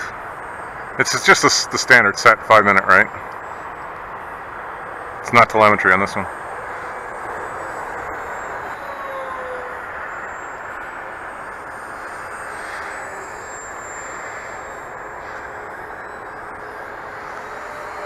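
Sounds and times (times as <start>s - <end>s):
faint electric motor whine: 0.0s - 18.0s
propeller and airflow rushing: 0.0s - 18.0s.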